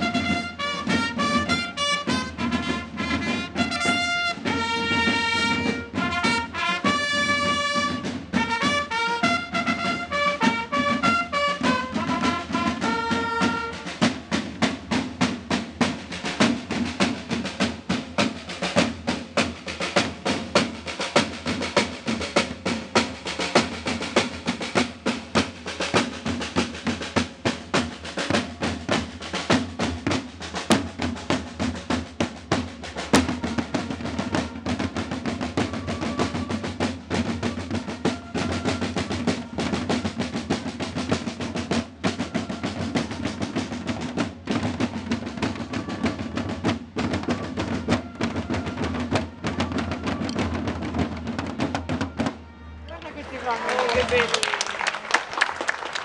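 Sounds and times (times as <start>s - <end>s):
trumpet fanfare: 0.0s - 14.2s, 33.0s - 40.8s, 41.8s - 43.9s, 45.1s - 55.2s
marching side drums with rolls: 0.0s - 56.0s.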